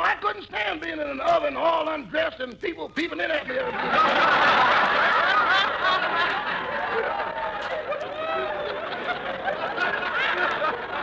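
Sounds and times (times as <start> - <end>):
audience laughing: 3.5 - 11.0.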